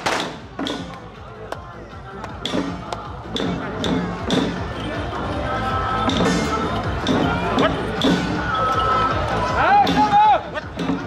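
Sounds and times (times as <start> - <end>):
drumbeats: 0.0 - 11.0
people's voices: 0.0 - 11.0.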